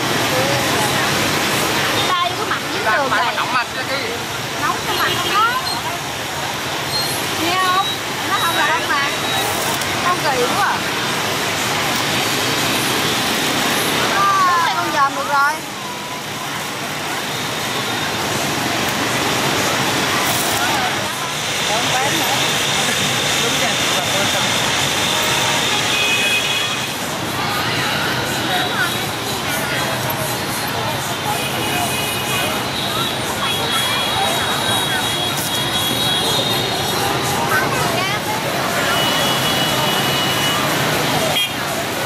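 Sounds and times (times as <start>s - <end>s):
crowd chatter: 0.0s - 42.0s
motorbike traffic: 0.0s - 42.0s.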